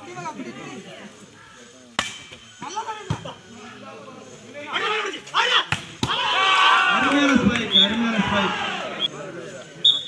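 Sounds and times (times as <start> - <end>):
players shouting: 4.5 - 9.3.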